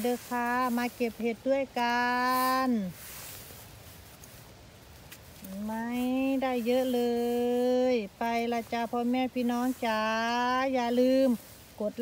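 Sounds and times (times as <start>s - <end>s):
faint outdoor background hush: 0.0s - 12.0s.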